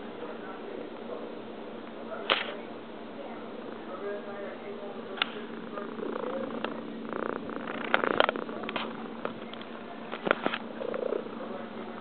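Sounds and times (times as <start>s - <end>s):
cat purring: 3.4s - 12.0s.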